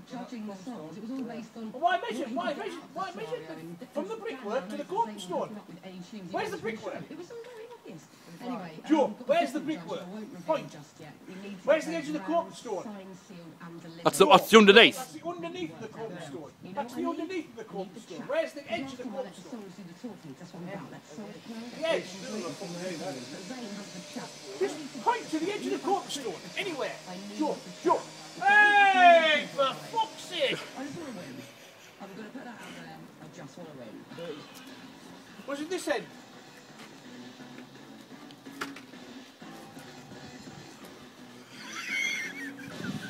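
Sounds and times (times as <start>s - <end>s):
men talking: 14.1s - 16.3s, 24.6s - 31.6s, 35.4s - 36.1s.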